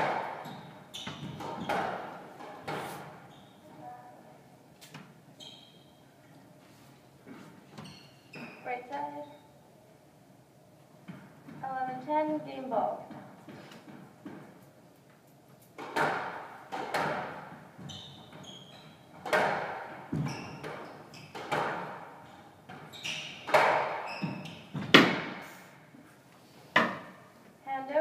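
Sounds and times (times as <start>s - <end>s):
shoes squeaking on court floor: 0.0s - 3.9s, 4.8s - 6.1s, 7.3s - 9.4s, 15.8s - 25.3s.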